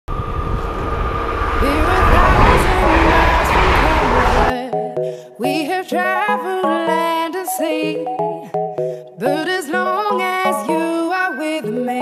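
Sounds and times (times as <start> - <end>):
electric train rumble: 0.1 - 4.5
steady high tone: 0.1 - 4.5
music with rising gliding notes: 0.1 - 4.6.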